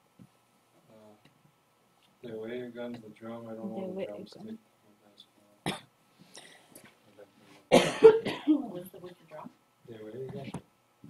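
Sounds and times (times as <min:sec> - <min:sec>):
person coughing: 0:05.7 - 0:05.9, 0:07.7 - 0:08.6.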